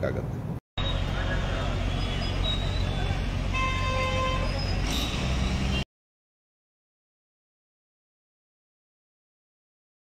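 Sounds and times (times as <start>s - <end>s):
street traffic engine rumble: 0.0s - 5.9s
vehicle horn: 3.5s - 5.8s.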